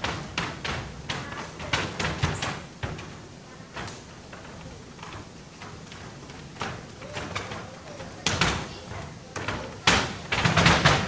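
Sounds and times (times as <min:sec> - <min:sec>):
bare feet on wooden floor: 0:00.0 - 0:11.0.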